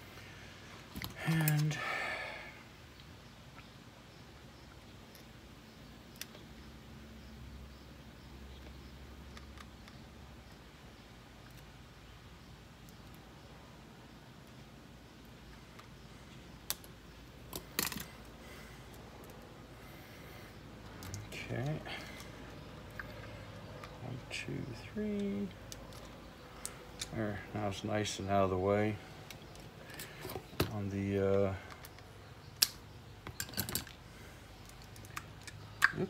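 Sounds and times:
low room noise: 0:00.0 - 0:36.0
sharp plastic clicks: 0:16.6 - 0:18.2, 0:31.7 - 0:34.0
handling plastic parts: 0:16.7 - 0:19.5.

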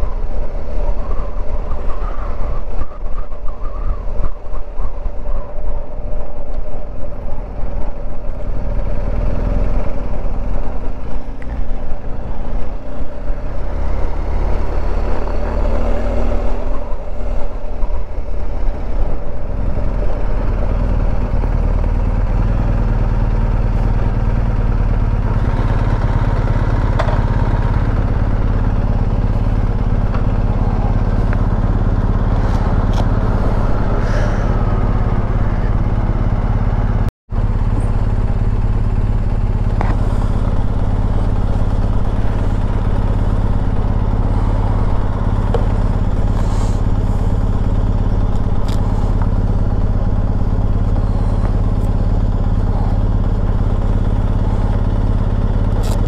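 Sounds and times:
motorcycle engine idling: 0:00.0 - 0:56.0.

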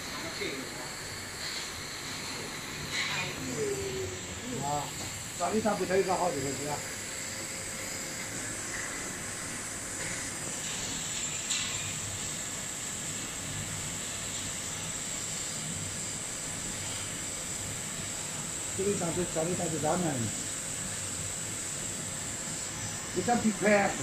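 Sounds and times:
machine hiss with high whine: 0:00.0 - 0:24.0.

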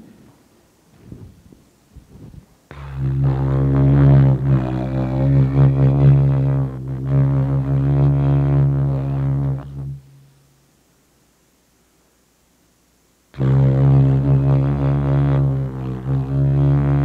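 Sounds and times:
didgeridoo drone: 0:02.7 - 0:10.1, 0:13.4 - 0:17.0.

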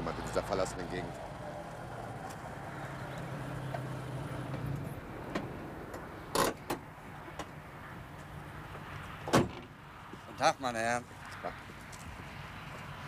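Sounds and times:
car door slamming: 0:09.2 - 0:09.7.

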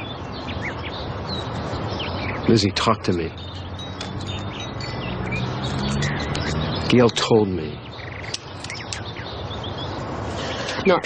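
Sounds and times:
high bird chirps: 0:00.0 - 0:11.0
steady background hiss: 0:00.0 - 0:11.0.

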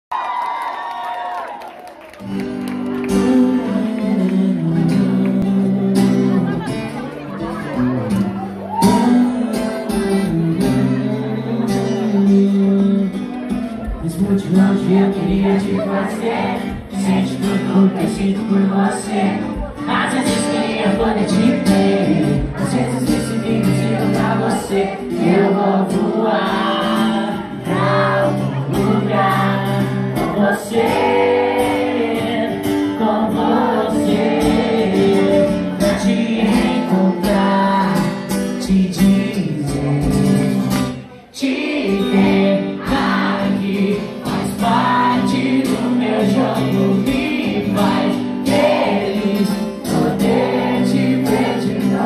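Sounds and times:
concert crowd cheering and screaming: 0:00.1 - 0:04.7, 0:05.4 - 0:09.6, 0:13.6 - 0:38.3
acoustic guitar: 0:02.1 - 0:52.0
audience singing along: 0:13.8 - 0:39.6, 0:41.3 - 0:52.0.

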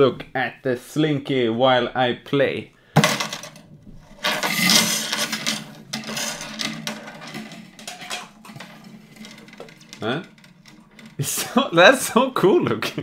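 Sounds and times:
metal slinky rattling: 0:04.1 - 0:12.1.

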